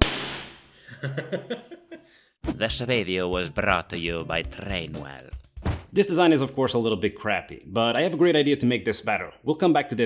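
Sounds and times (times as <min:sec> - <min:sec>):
sharp loud bang: 0:00.0 - 0:00.6
man laughing: 0:00.8 - 0:02.1.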